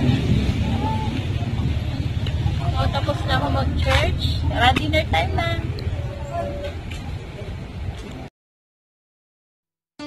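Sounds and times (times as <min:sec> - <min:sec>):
people talking: 0:00.0 - 0:08.3
steady low rumble: 0:00.0 - 0:08.3.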